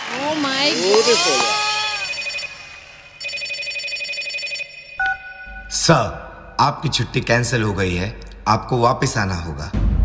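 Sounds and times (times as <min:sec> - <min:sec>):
phone electronic ringtone: 0:01.0 - 0:02.6, 0:03.2 - 0:05.7.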